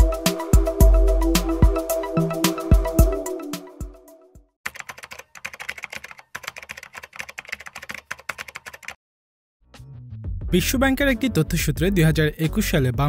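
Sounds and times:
typing on computer keyboard: 4.7s - 9.0s.

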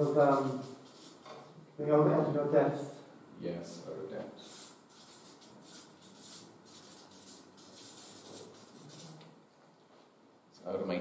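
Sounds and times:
marker squeaking on paper: 0.3s - 1.4s, 4.4s - 9.4s.

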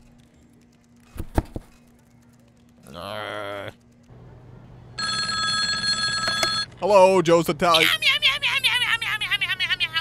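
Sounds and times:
telephone ringing: 5.0s - 6.8s.

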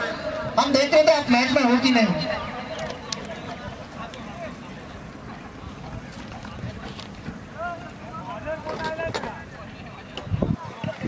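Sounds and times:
distant voices calling out: 0.0s - 11.0s
wind rumbling on microphone: 5.0s - 11.0s.

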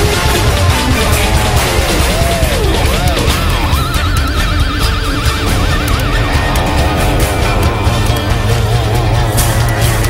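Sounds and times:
bass guitar: 0.0s - 10.0s
drums: 0.0s - 10.0s.

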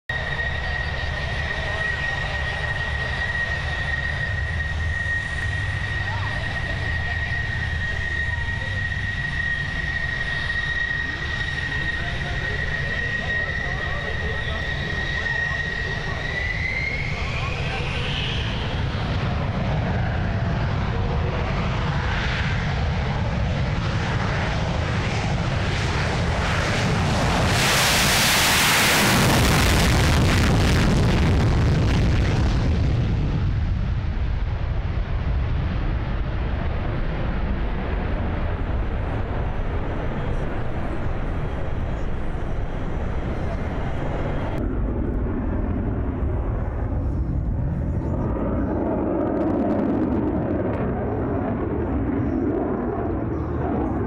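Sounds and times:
afterburner takeoff roar: 0.1s - 54.0s
jet engine whine: 0.1s - 54.0s.

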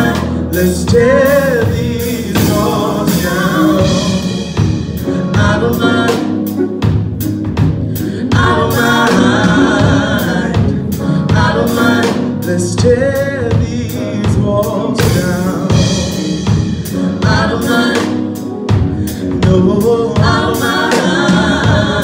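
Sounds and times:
person singing: 0.0s - 7.0s, 7.9s - 22.0s
drum kit beat: 0.0s - 22.0s
keyboards: 0.0s - 22.0s.

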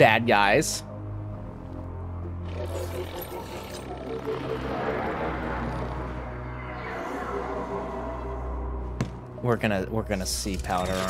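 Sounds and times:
low drone with held tones: 2.7s - 9.0s.

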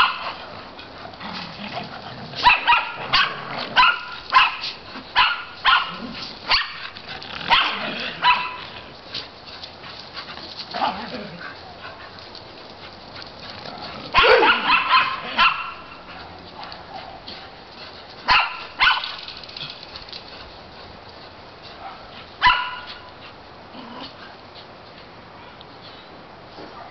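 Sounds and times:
dogs barking: 0.0s - 0.4s, 2.4s - 8.8s, 14.0s - 17.3s, 18.2s - 19.2s, 21.7s - 23.1s.

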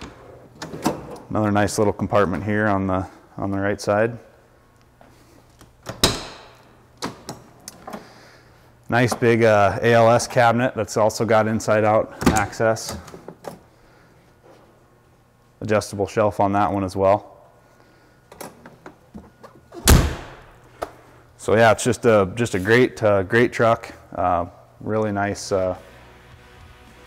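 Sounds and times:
metal door clunk: 5.8s - 7.4s
metal door slamming shut: 5.9s - 6.6s, 19.8s - 20.5s.

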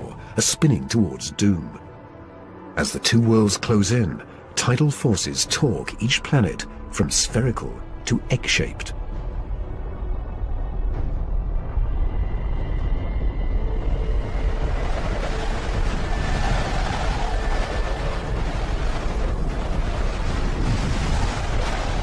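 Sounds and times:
deep noisy rumble: 7.7s - 22.0s.

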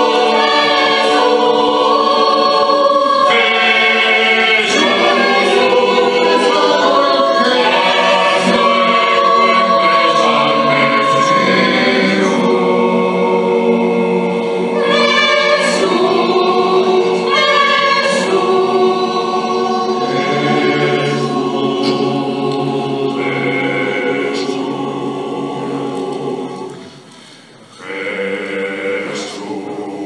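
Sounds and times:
mixed choir singing: 0.0s - 30.0s.

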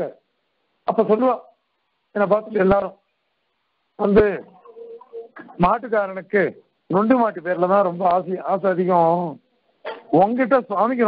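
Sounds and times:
man speaking in sing-song phrases: 4.0s - 4.5s.

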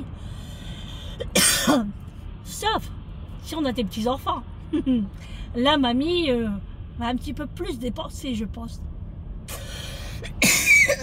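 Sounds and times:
woman coughing: 1.3s - 1.9s, 10.2s - 11.0s.

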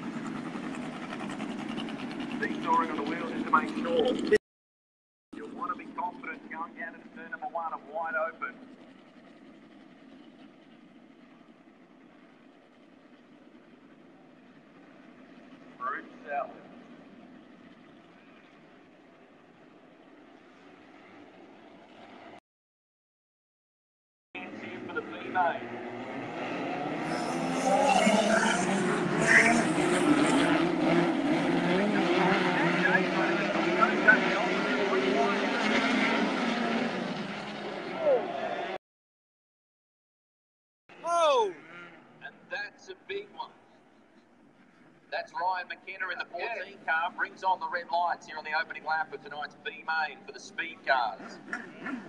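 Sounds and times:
distant race car engines droning: 0.0s - 4.4s, 5.4s - 22.4s, 24.4s - 38.8s, 41.0s - 52.0s.

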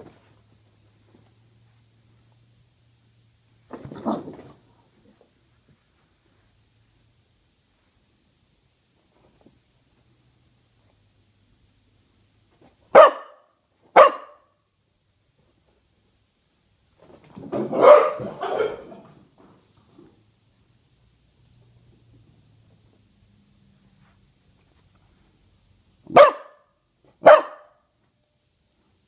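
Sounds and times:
dog barking: 12.9s - 14.6s, 17.7s - 19.0s, 26.1s - 27.8s.

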